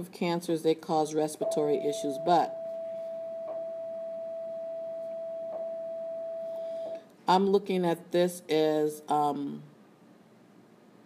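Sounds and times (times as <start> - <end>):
steady single-pitch tone: 1.4 - 7.0.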